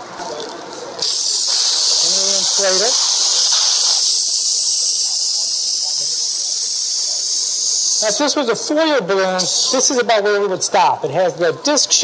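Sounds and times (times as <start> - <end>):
helium hissing from inflator: 1.0 - 8.4, 9.4 - 9.9.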